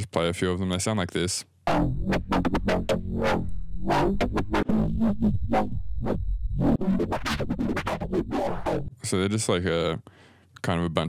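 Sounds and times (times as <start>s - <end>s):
synthesized bass hits: 1.7s - 8.9s
sustained low bass: 1.7s - 9.0s.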